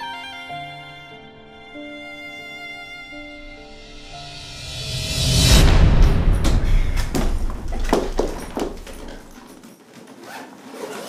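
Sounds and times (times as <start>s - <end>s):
suitcase zipper closing: 8.8s - 11.0s.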